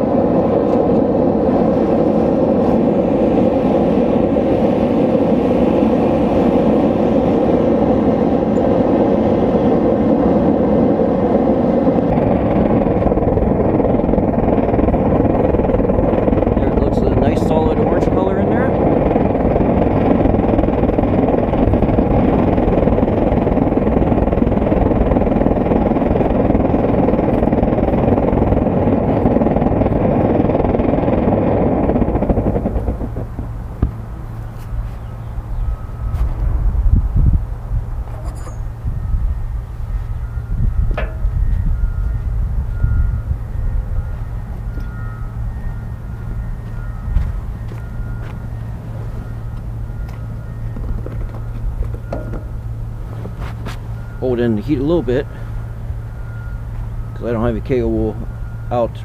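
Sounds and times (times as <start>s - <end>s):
gas burner rushing: 0.0s - 59.0s.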